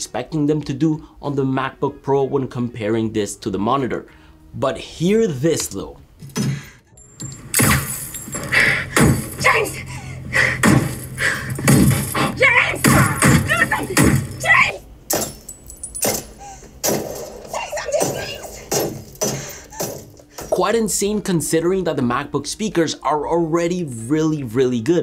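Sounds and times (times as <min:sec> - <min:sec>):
low steady hum: 0:04.0 - 0:17.0
film soundtrack music: 0:06.9 - 0:15.2.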